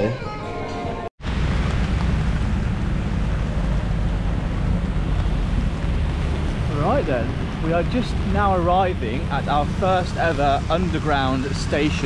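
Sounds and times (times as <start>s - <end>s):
road traffic: 0.3s - 12.0s
rain: 1.2s - 12.0s
wind rumbling on microphone: 1.2s - 12.0s.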